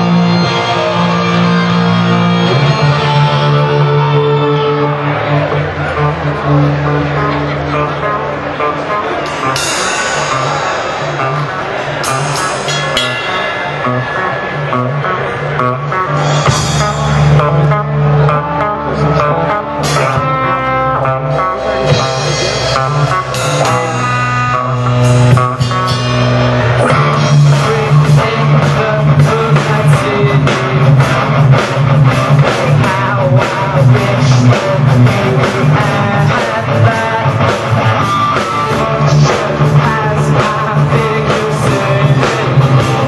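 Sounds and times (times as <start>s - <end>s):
live rock band: 0.0s - 43.0s
sustained low guitar notes: 0.0s - 43.0s
sharp drum strikes: 9.3s - 14.9s.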